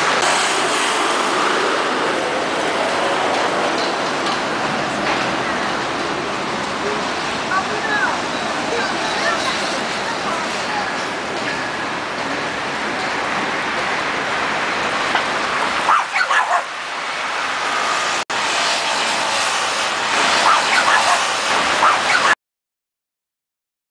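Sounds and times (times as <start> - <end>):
passers-by: 0.0 - 22.4
traffic: 0.0 - 22.4
dog barks: 15.8 - 16.7, 20.4 - 22.4.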